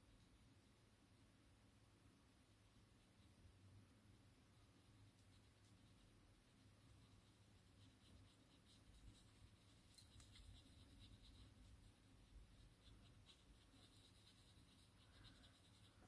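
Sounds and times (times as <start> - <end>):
brush scratching on card: 2.4 - 3.5, 4.1 - 16.0.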